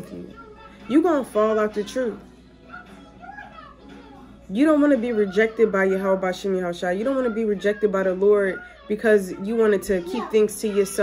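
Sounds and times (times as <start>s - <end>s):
woman speaking: 0.0s - 2.2s, 4.5s - 11.0s.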